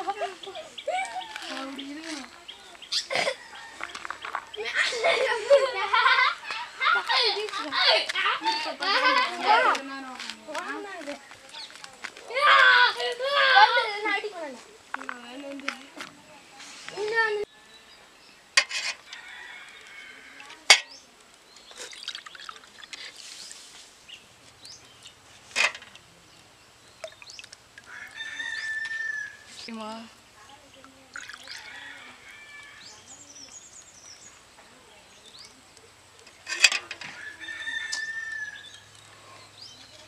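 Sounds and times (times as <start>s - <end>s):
children talking: 0.0s - 17.5s, 19.8s - 23.2s, 29.3s - 40.0s
rooster crowing: 3.3s - 4.8s, 19.0s - 20.5s, 27.9s - 29.5s, 31.4s - 33.0s, 37.0s - 38.8s.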